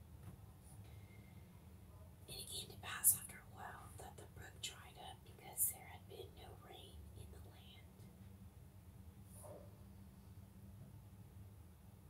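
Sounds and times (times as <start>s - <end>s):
person whispering: 2.3s - 7.9s.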